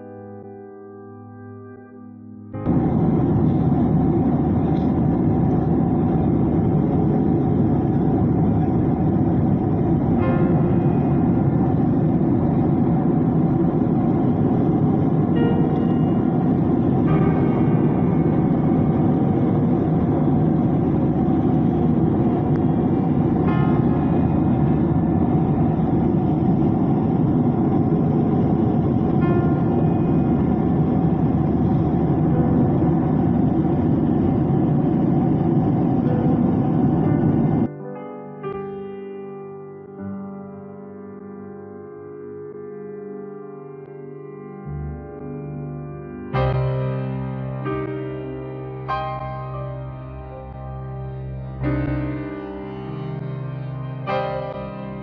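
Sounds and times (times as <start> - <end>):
aircraft cabin drone: 2.6 - 37.7, 46.4 - 55.0.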